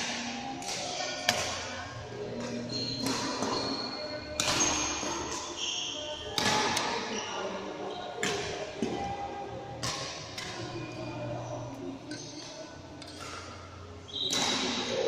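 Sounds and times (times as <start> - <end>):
rackets striking shuttlecocks: 0.0 - 1.7, 2.3 - 5.6, 6.2 - 7.1, 8.2 - 15.0
shoes squeaking on court floor: 2.2 - 8.2, 10.6 - 14.8.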